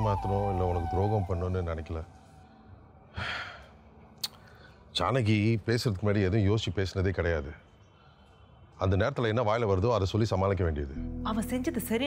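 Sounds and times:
person sighing: 0:03.1 - 0:03.7.

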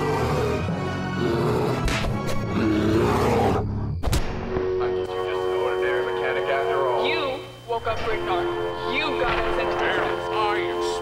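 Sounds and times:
growling roar: 0:00.0 - 0:03.8
film soundtrack music: 0:00.0 - 0:11.0.

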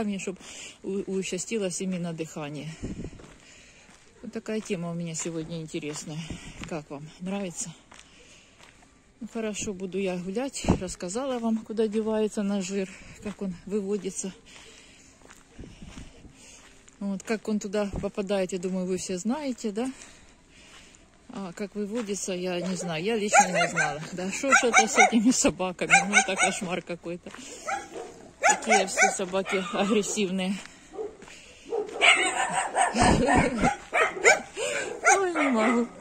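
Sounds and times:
faint outdoor background noise: 0:00.0 - 0:36.0
footsteps on dirt road: 0:00.0 - 0:36.0
dogs barking aggressively: 0:22.6 - 0:26.8, 0:27.5 - 0:36.0.

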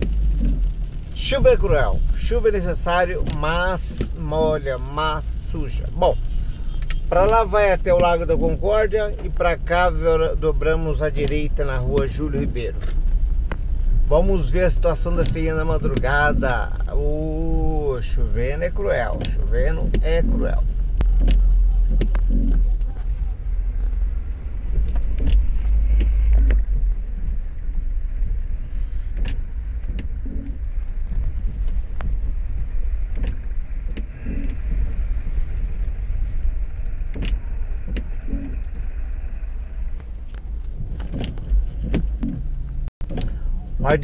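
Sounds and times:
car engine and road rumble: 0:00.0 - 0:44.0.

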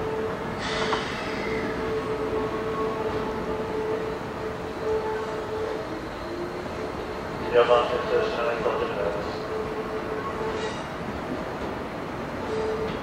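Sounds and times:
electric train humming on tracks: 0:00.0 - 0:13.0.

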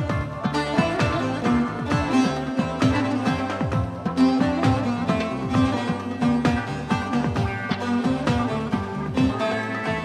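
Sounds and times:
plucked string melody: 0:00.0 - 0:10.0
regular beat: 0:00.0 - 0:10.0.

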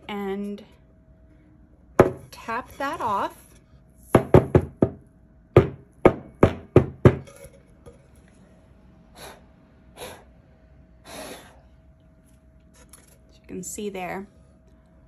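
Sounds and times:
faint steady hum: 0:00.0 - 0:15.0
wooden board knocking on table: 0:04.2 - 0:05.0.

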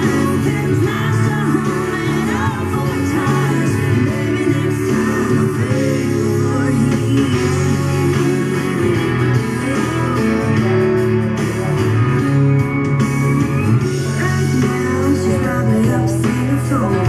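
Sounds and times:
country-pop song with guitar on radio: 0:00.0 - 0:17.0.

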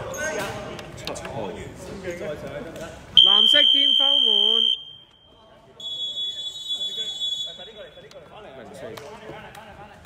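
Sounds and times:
referee's whistle blast: 0:03.2 - 0:05.1, 0:05.8 - 0:07.9.

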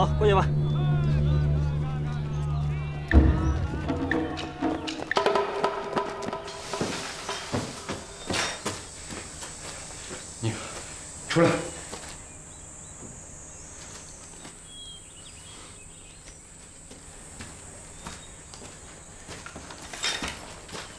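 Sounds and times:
score music: 0:00.0 - 0:08.2
footsteps: 0:01.4 - 0:12.2, 0:16.2 - 0:20.9
rustling: 0:06.2 - 0:11.1
high-pitched insect drone: 0:06.4 - 0:15.5.

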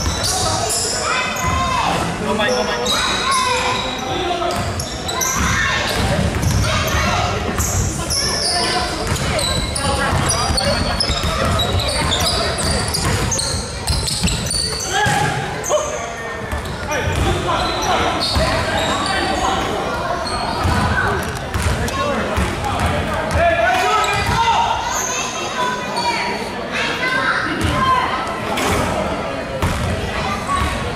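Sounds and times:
basketball bouncing on gym floor: 0:09.0 - 0:15.3, 0:20.6 - 0:21.8.

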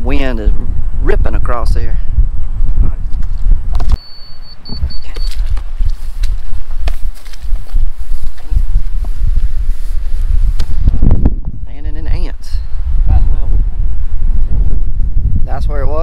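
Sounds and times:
high electronic beeps: 0:04.0 - 0:05.4.

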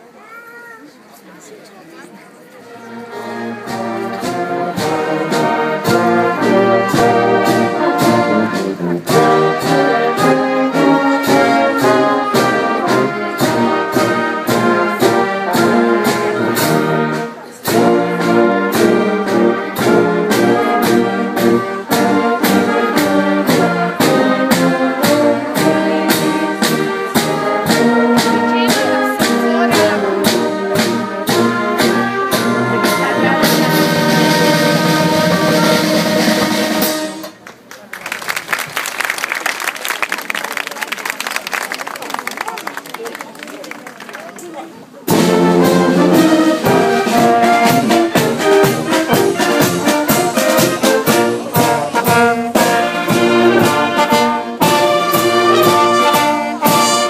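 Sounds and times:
trumpets and trombones playing: 0:02.6 - 0:37.4, 0:45.1 - 0:57.0
steady drum beat: 0:03.2 - 0:37.2, 0:45.1 - 0:57.0.

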